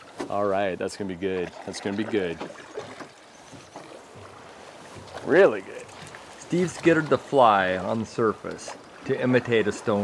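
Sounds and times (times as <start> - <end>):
river current washing: 0.0 - 10.0.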